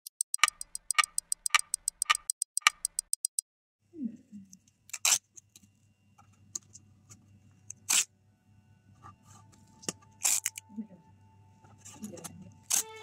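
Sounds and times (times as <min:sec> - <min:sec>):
clock ticking: 0:00.0 - 0:03.4.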